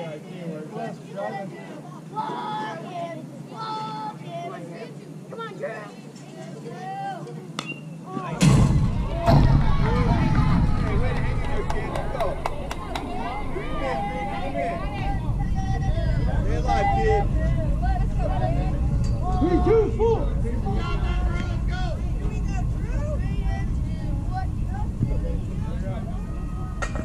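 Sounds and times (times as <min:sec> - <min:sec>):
voices calling and chattering: 0:00.0 - 0:27.0
steady low rumble: 0:08.4 - 0:27.0.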